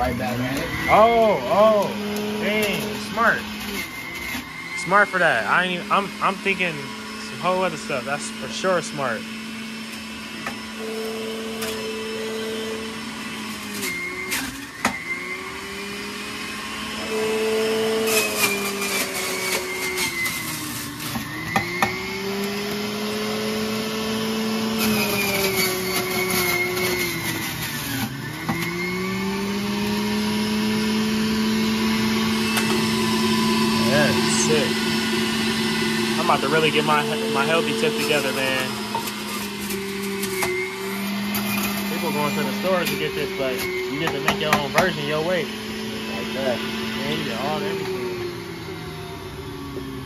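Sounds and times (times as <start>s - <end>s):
juicer motor running: 0.0s - 50.0s.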